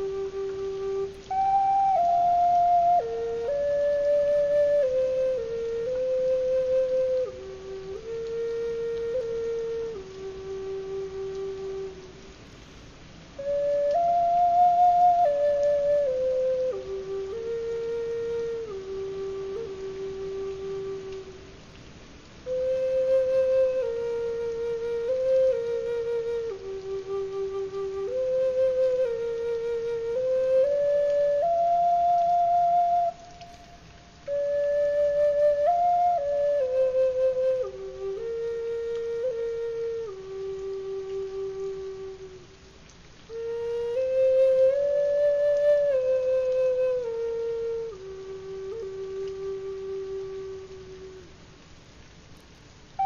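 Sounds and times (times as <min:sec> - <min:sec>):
slow flute-like melody: 0:00.0 - 0:53.0.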